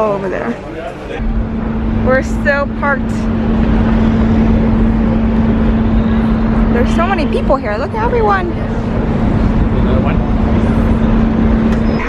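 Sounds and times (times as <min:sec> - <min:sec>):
ferry engines droning: 0:00.0 - 0:12.0.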